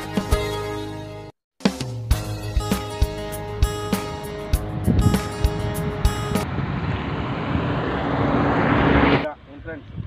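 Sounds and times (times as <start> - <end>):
background music: 0.0 - 6.5
outdoor rushing noise: 4.4 - 10.0.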